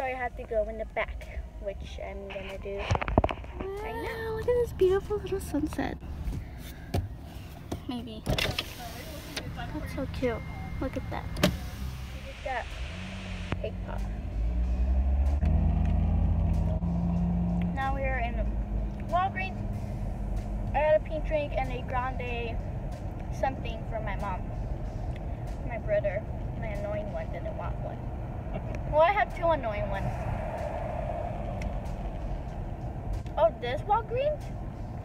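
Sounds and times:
car engine and road noise: 0.0s - 35.0s.

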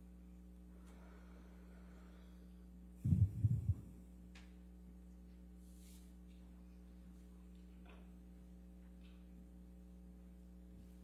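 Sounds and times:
low electrical hum: 0.0s - 11.0s
low dull thumps: 3.0s - 4.0s.

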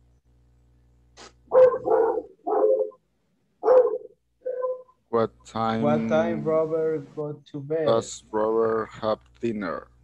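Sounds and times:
dog barking: 1.5s - 3.0s, 3.6s - 5.0s.

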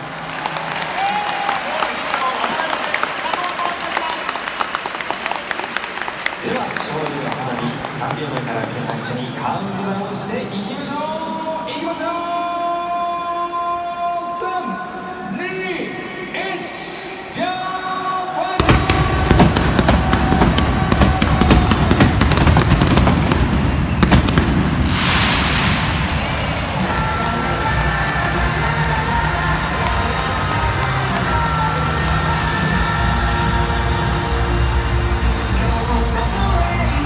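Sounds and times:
fireworks bangs and crackles: 18.6s - 32.8s
celebration music with steady beat: 18.6s - 37.0s.

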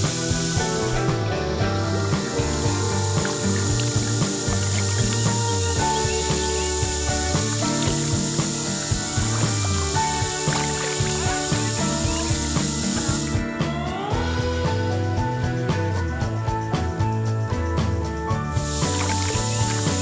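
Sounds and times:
background music with steady beat: 0.0s - 20.0s.

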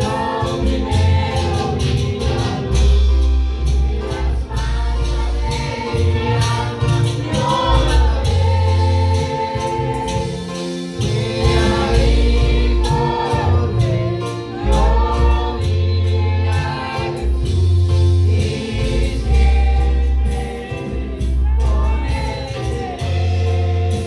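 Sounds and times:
deep bass notes: 0.0s - 10.4s, 11.0s - 24.0s
drum kit: 0.0s - 24.0s
worship singing: 0.0s - 24.0s.

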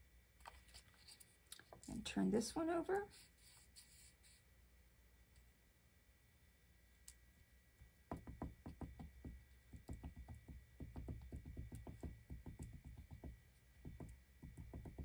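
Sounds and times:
glue bottle tapping on paper: 8.1s - 15.0s.

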